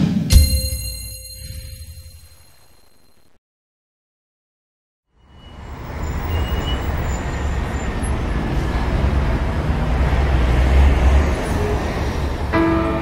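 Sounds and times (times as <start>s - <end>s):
road noise: 5.1s - 13.0s
traffic rumble: 5.2s - 12.8s.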